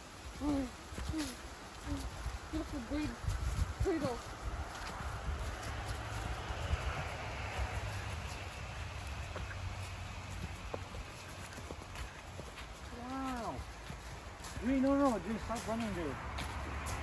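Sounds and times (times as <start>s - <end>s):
footsteps in dry leaves: 0.0s - 17.0s.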